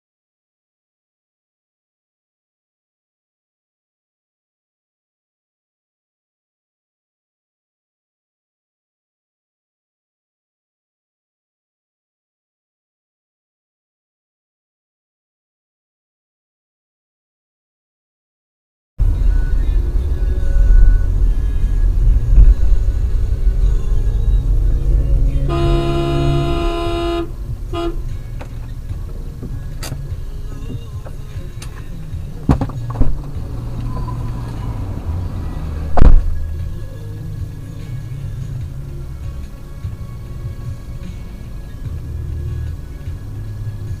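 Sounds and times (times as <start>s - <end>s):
road and engine noise: 19.0s - 44.0s
car horn: 24.8s - 28.6s.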